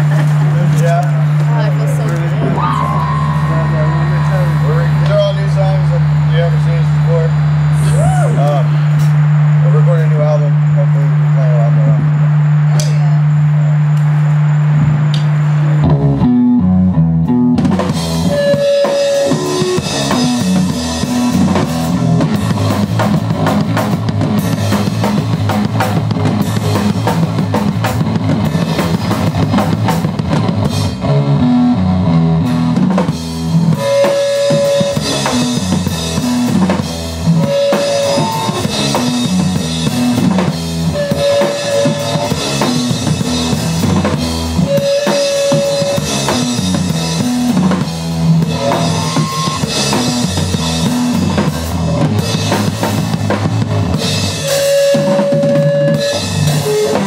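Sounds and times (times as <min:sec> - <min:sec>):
rock drum kit: 0:00.0 - 0:10.8, 0:14.8 - 0:57.0
electric guitar riff: 0:00.0 - 0:13.9, 0:15.7 - 0:57.0.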